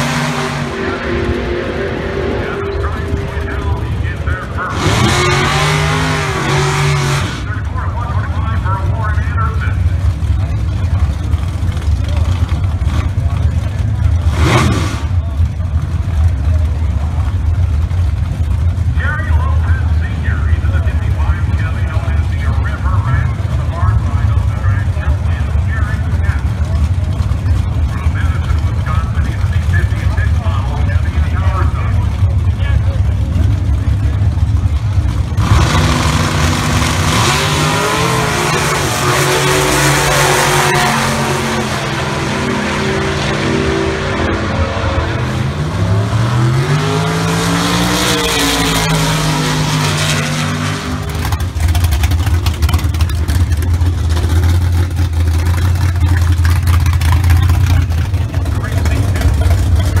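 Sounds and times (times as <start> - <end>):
steady low rumble: 0.0 - 14.3, 15.0 - 47.9
racing engines revving hard: 0.0 - 17.2, 18.1 - 60.0.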